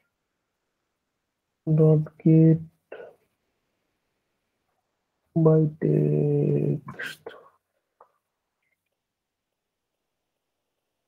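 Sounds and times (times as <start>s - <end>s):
person speaking: 1.6s - 3.3s, 5.3s - 8.2s.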